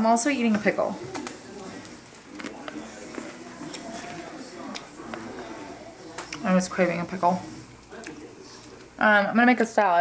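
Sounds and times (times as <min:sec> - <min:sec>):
faint television speech: 0:00.0 - 0:10.0.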